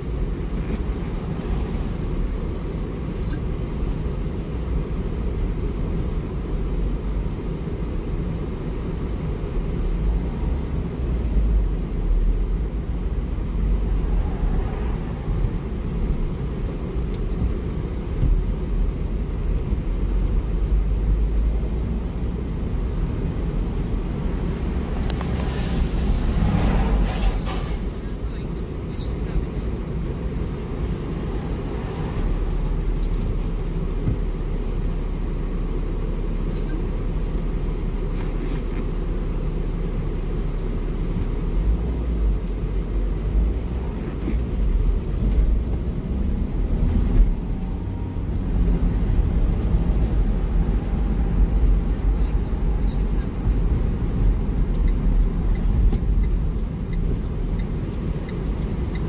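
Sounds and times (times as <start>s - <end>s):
car engine and road noise in cabin: 0.0s - 59.0s.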